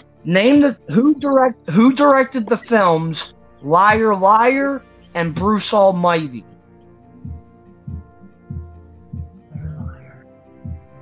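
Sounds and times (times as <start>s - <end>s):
held chord background music: 0.0s - 11.0s
low regular thump: 7.2s - 10.9s.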